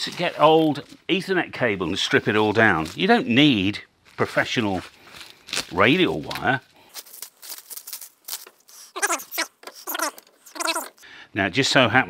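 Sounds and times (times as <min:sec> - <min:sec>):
cellophane crinkling: 0:04.0 - 0:11.0
plastic reel squeaks: 0:08.8 - 0:11.0.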